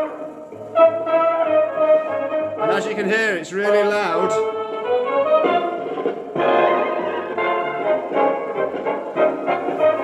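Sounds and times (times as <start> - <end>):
music from tape recorder speaker: 0.0 - 10.0.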